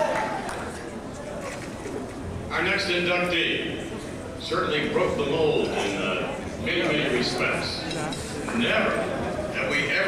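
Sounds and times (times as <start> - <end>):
hall room noise: 0.0 - 10.0
man speaking over public address: 2.5 - 10.0.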